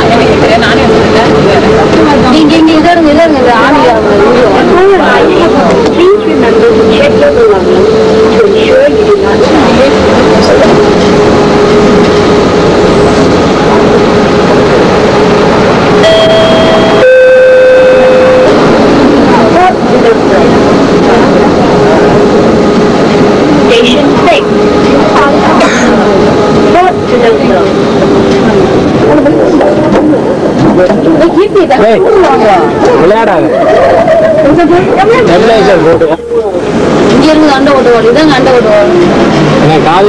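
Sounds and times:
two-note descending chime: 0:16.0 - 0:18.5.

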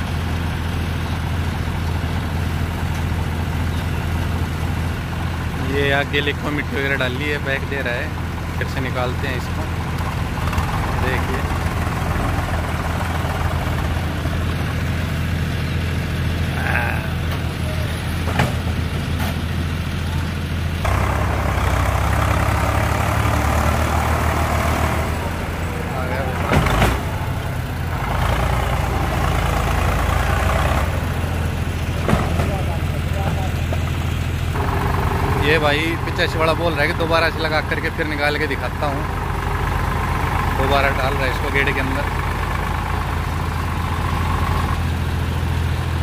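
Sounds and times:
tractor diesel engine straining: 0:00.0 - 0:46.0.

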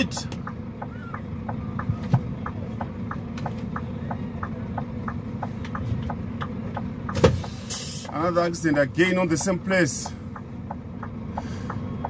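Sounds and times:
turn signal ticking: 0:00.0 - 0:12.0.

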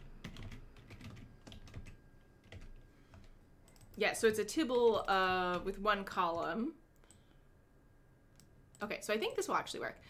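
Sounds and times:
woman speaking: 0:04.0 - 0:06.8, 0:08.8 - 0:10.0.

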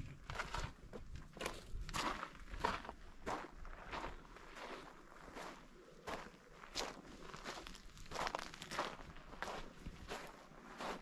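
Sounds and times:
footsteps on sandy gravel: 0:00.2 - 0:11.0.

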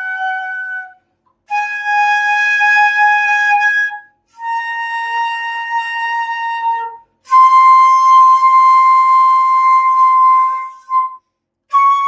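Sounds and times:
flute note: 0:00.0 - 0:12.0.

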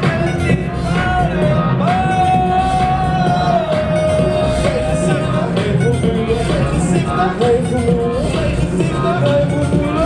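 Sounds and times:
heavy bass beat: 0:00.0 - 0:10.0
live hip-hop music through pa: 0:00.0 - 0:10.0.

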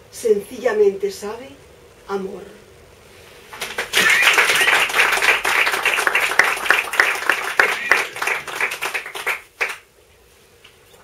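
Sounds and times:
audience applauding: 0:03.6 - 0:09.9.

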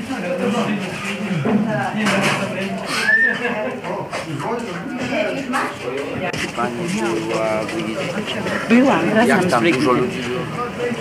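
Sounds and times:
indistinct talking: 0:00.0 - 0:11.0
short high squeal: 0:02.9 - 0:03.4.

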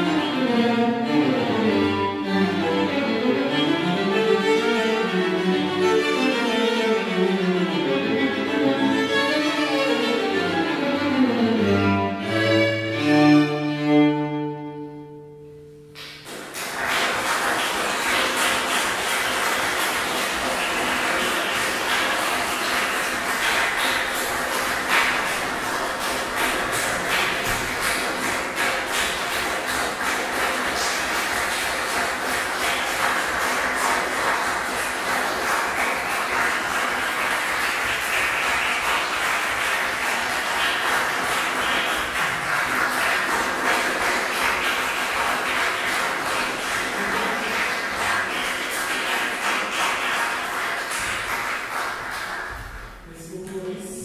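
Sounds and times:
audience applauding: 0:16.0 - 0:53.1.

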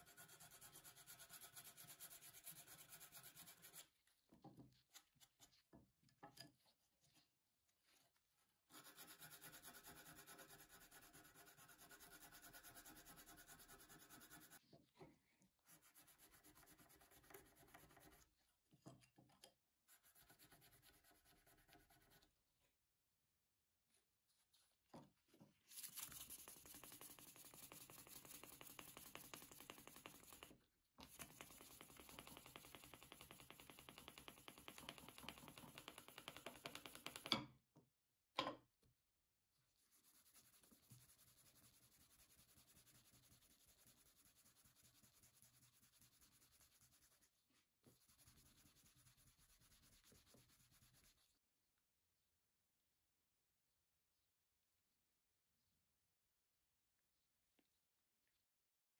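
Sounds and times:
metal rubbed on felt disc: 0:00.0 - 0:04.0, 0:08.7 - 0:14.7, 0:15.6 - 0:18.4, 0:19.9 - 0:22.4, 0:25.7 - 0:37.4, 0:39.7 - 0:51.4
sandpaper rubbing on wood: 0:39.9 - 0:47.3, 0:47.9 - 0:51.3.

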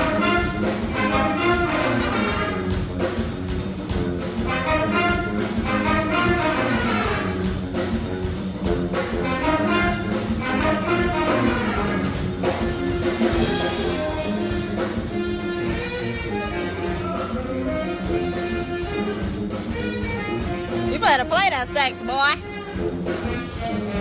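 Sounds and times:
brass ensemble playing: 0:00.0 - 0:03.3, 0:03.9 - 0:24.0.

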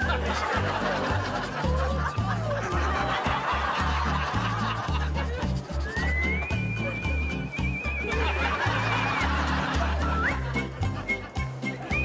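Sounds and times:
audience laughter: 0:00.0 - 0:07.2, 0:07.9 - 0:12.0
comedy background music: 0:00.0 - 0:12.0.

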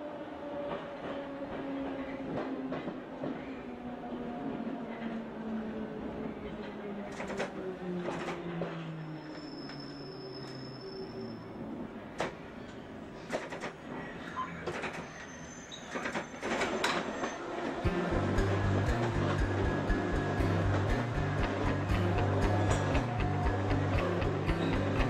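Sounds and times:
train rumbling in tunnel: 0:00.0 - 0:25.0
rockabilly guitar music: 0:17.9 - 0:25.0.

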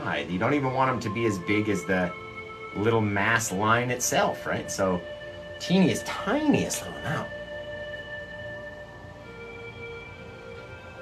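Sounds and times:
soft synth pad music: 0:00.0 - 0:11.0.

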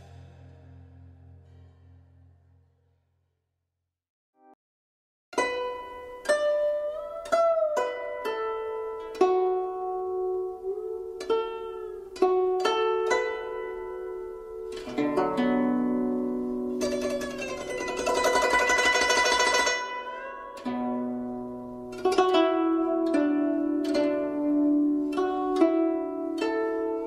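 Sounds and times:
plucked string instrument music: 0:05.3 - 0:27.0.

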